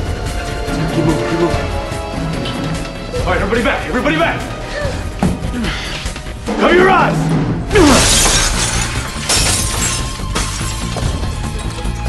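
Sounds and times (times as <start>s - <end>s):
glass smashing: 7.8s - 11.3s.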